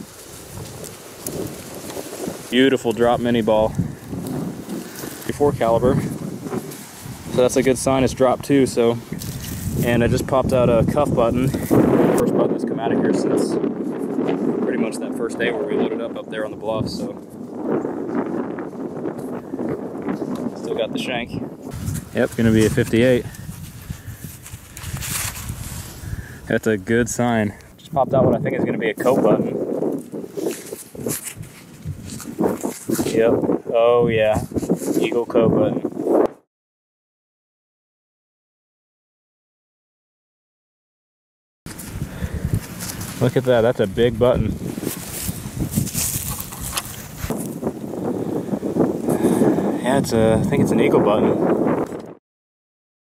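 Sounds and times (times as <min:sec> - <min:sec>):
hand rustling through dry stubble: 0:00.0 - 0:07.8, 0:08.9 - 0:10.1, 0:21.7 - 0:26.3, 0:29.0 - 0:33.2, 0:41.7 - 0:48.1
wind buffeting microphone: 0:00.0 - 0:36.4, 0:41.7 - 0:52.2.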